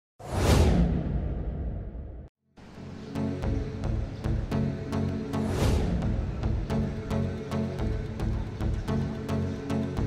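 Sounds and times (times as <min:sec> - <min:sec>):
whoosh sound effect: 0:00.2 - 0:02.2.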